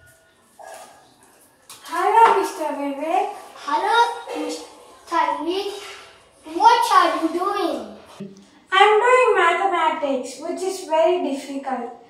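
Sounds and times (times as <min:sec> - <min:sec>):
child speaking: 0:01.9 - 0:12.0.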